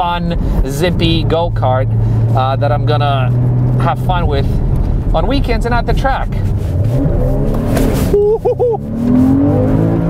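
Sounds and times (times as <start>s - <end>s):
car engine accelerating: 0.2s - 10.0s.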